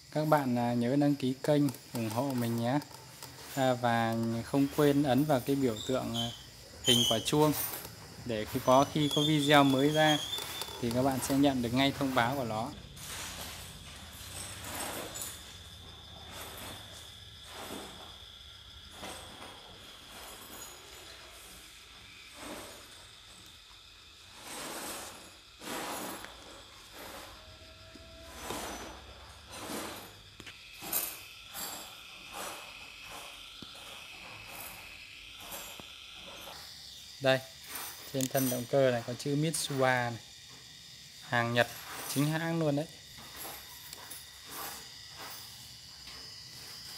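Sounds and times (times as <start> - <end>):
parts clicking and knocking: 0.0 - 12.8, 37.5 - 46.9
electric motor whine: 0.3 - 16.7, 21.9 - 46.9.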